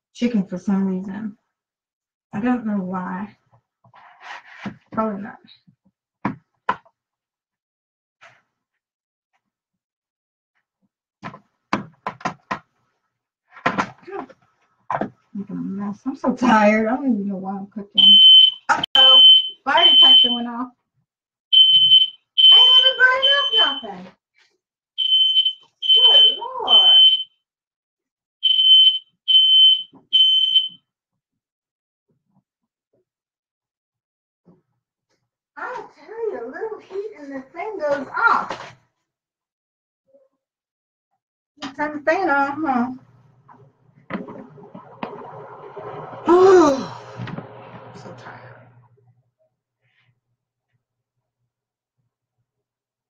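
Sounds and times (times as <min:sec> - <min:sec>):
smoke detector beeps: 0:18.0 - 0:20.4, 0:21.6 - 0:24.0, 0:25.0 - 0:27.3, 0:28.4 - 0:30.8.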